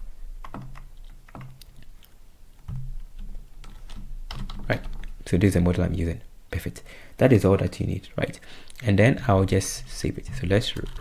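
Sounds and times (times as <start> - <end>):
typing on computer keyboard: 0.4 - 1.8, 3.6 - 5.0.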